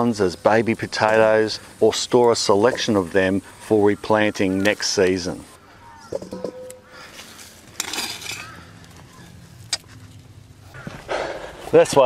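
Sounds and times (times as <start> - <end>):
sharp metallic clink: 6.2 - 6.9.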